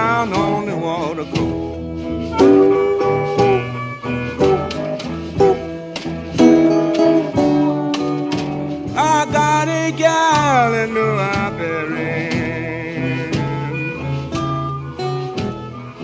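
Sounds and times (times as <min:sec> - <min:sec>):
plucked guitar notes: 0:00.0 - 0:16.0
repeating low bass line: 0:01.4 - 0:09.9.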